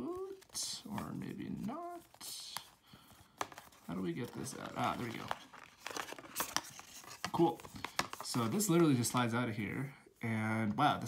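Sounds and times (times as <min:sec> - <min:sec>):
cardboard rustling: 0:00.0 - 0:09.4.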